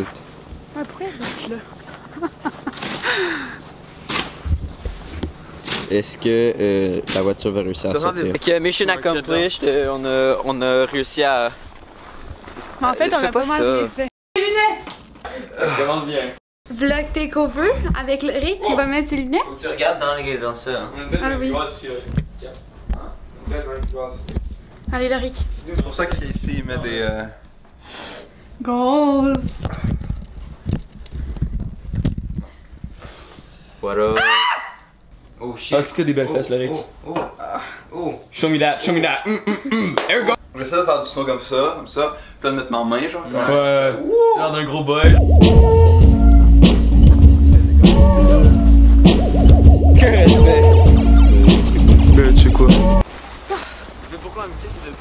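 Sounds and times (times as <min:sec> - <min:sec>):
deep low rumble: 0:17.1 - 0:18.1, 0:45.1 - 0:53.0
footsteps on hardwood floor: 0:21.2 - 0:26.5.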